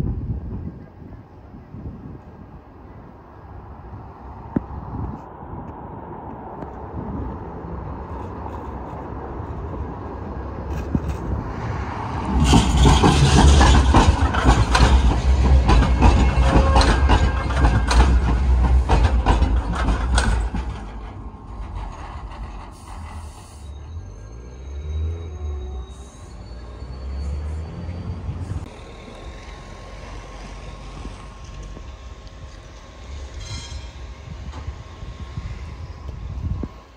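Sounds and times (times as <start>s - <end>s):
tram rumbling past: 0.0s - 36.9s
tram wheels clattering: 6.2s - 36.9s.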